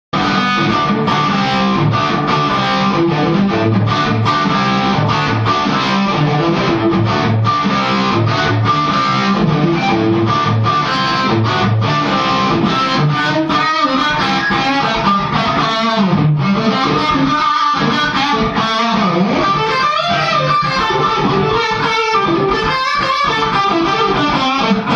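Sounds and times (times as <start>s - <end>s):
electric guitar rock riff: 0.1s - 24.9s.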